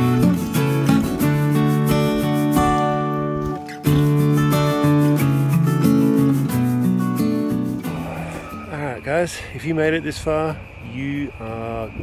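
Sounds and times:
acoustic guitar music: 0:00.0 - 0:10.2
man speaking: 0:08.5 - 0:12.0.

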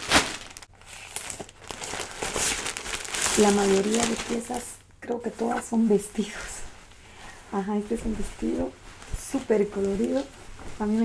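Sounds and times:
plastic bag crinkling: 0:00.0 - 0:05.6, 0:07.9 - 0:11.0.

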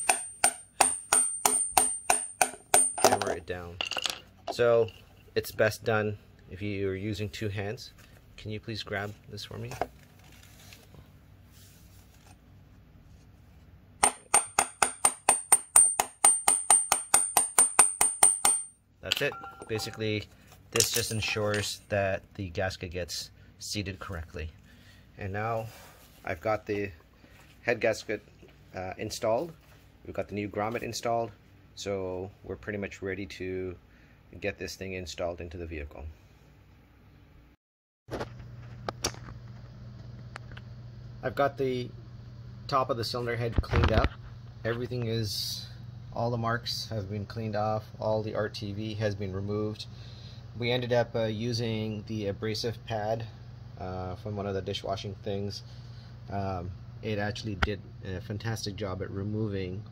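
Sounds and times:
hammer tapping on metal socket: 0:00.0 - 0:03.3
steady low hum: 0:38.2 - 0:59.9.

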